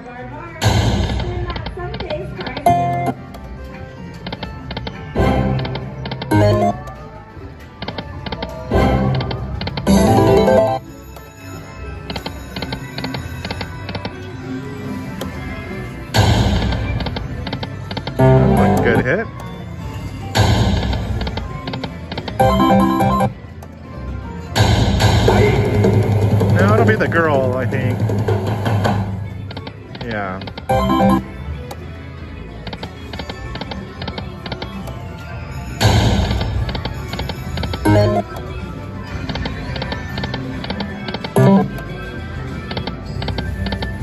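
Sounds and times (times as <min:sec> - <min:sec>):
slot machine jingles: 0:06.3 - 0:06.8, 0:09.8 - 0:13.9, 0:22.4 - 0:23.4, 0:30.7 - 0:31.3, 0:35.6 - 0:38.3.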